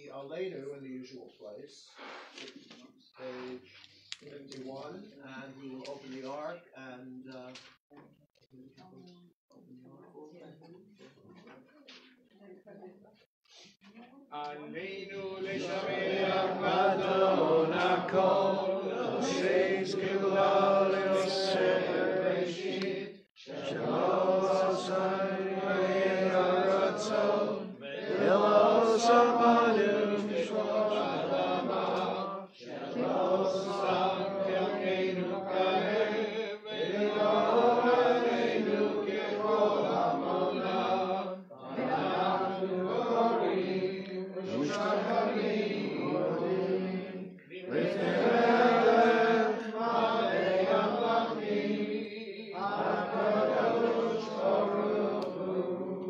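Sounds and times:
voices chanting a prayer: 14.4 - 56.0.

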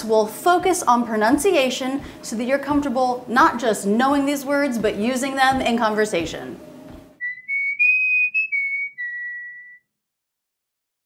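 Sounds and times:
whistled jingle: 7.2 - 9.9.

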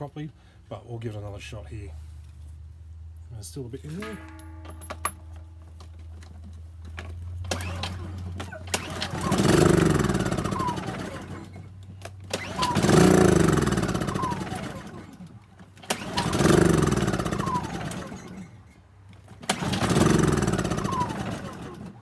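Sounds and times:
generator engine whirring: 3.9 - 22.0
starter cord pulls: 3.9 - 22.0.

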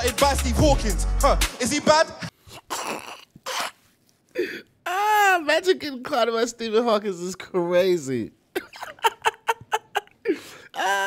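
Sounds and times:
man laughing: 8.5 - 11.0.

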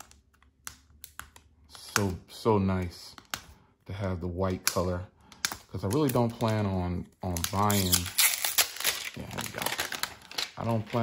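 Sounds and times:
plastic wrap crinkling: 5.7 - 11.0.

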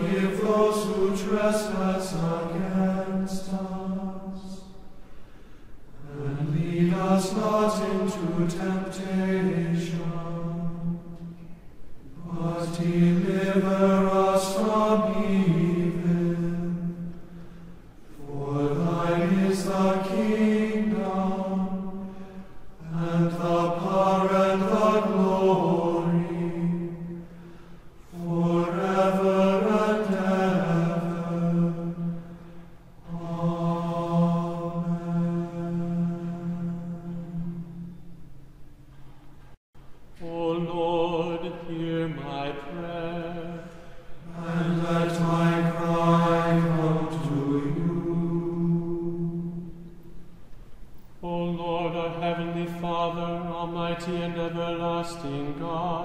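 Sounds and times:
voice chanting prayer: 6.0 - 11.3.

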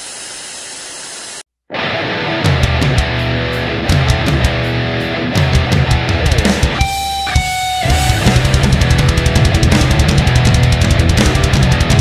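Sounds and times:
music: 1.7 - 12.0.

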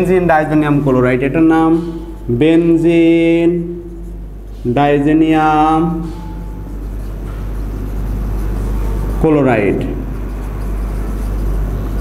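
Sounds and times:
marker writing on whiteboard: 0.0 - 12.0.

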